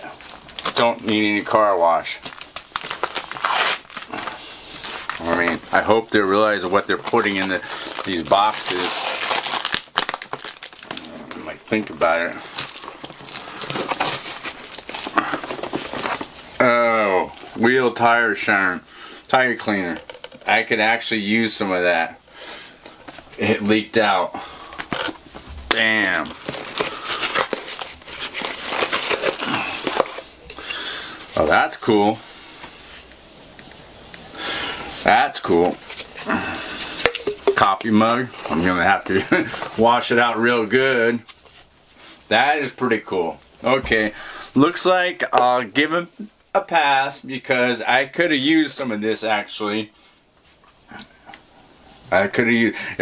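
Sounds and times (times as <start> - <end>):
paper packaging crinkling: 0.0 - 16.6, 24.7 - 32.2, 34.8 - 42.2
paper tearing: 3.0 - 5.4.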